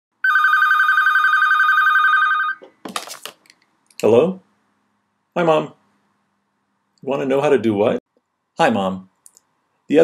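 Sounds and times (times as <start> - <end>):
telephone ringing: 0.2 - 2.6.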